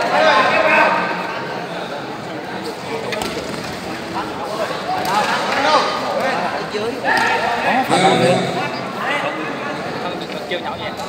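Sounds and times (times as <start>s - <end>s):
voices calling and talking: 4.0s - 11.0s.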